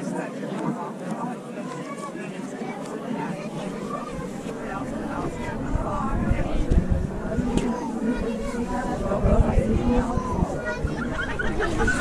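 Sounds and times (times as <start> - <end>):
chatter of visitors talking: 0.0 - 12.0.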